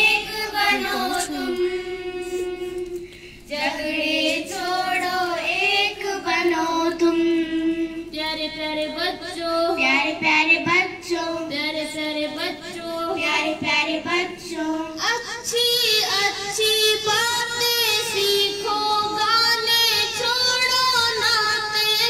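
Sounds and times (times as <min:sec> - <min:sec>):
girls singing: 0:00.0 - 0:22.0.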